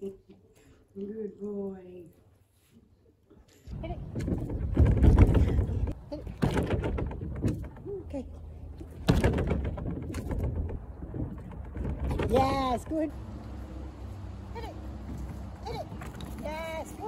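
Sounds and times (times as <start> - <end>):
boards rattling: 4.0 - 13.1
heavy thumps on ramp boards: 4.1 - 8.0, 8.9 - 13.1.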